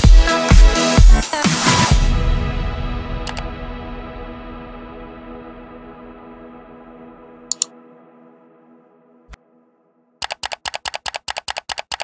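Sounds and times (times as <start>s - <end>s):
computer mouse double clicks: 10.2s - 12.0s.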